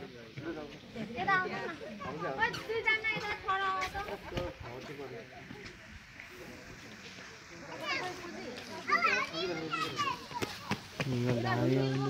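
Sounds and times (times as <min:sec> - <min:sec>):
children talking and calling out: 0:00.9 - 0:04.6, 0:07.5 - 0:12.0.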